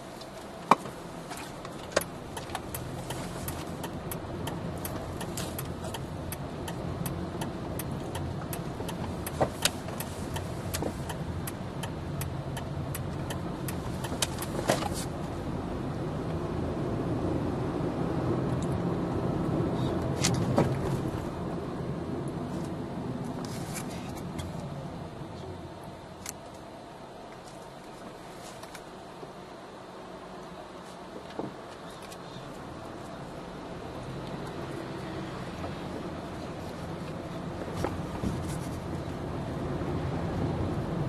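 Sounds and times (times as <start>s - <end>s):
car road and engine noise: 0.0s - 41.0s.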